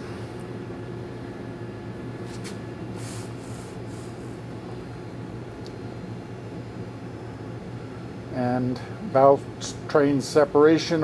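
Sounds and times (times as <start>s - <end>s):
low electrical hum: 0.0s - 11.0s
room noise hiss: 1.0s - 5.6s.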